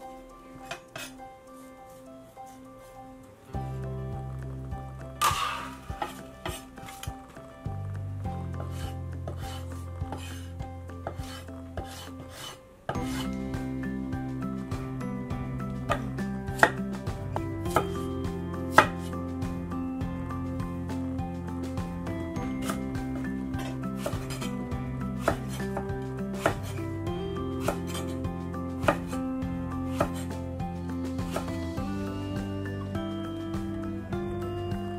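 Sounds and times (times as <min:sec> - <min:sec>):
background music with low notes: 0:00.0 - 0:34.9
knife scraping board: 0:08.6 - 0:10.5, 0:11.1 - 0:13.4, 0:23.6 - 0:24.6, 0:25.2 - 0:26.8, 0:27.6 - 0:28.2, 0:29.9 - 0:30.3.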